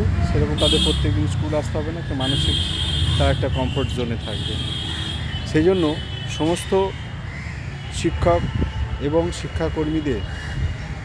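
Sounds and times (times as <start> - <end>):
crow cawing: 4.6 - 5.5, 6.8 - 7.9, 10.2 - 11.0.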